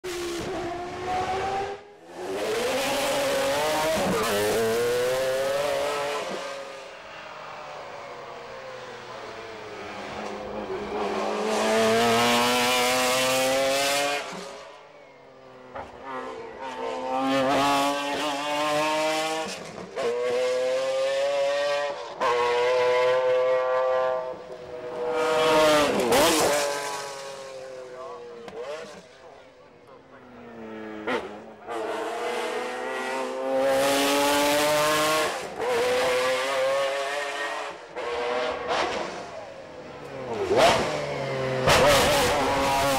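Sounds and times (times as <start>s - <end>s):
race car engine at full throttle: 0.0s - 42.9s.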